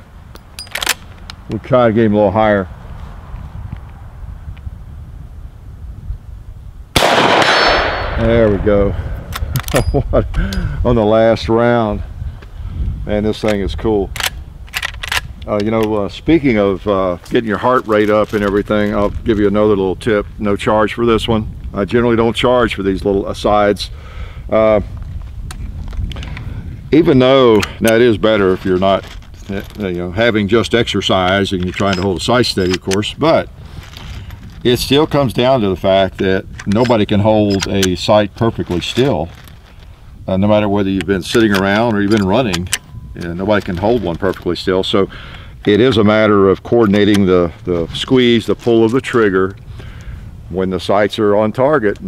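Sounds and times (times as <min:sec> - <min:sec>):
rifle clicks: 0:00.4 - 0:01.4, 0:07.0 - 0:08.3, 0:13.5 - 0:15.9
rifle shot: 0:07.0 - 0:09.5
low steady rumble: 0:24.6 - 0:51.6.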